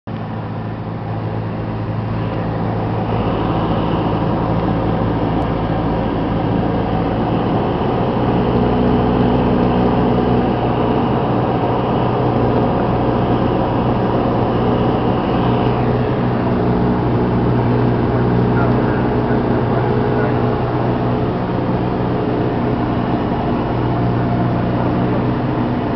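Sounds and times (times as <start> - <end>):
propeller plane engine droning: 0.1 - 25.9.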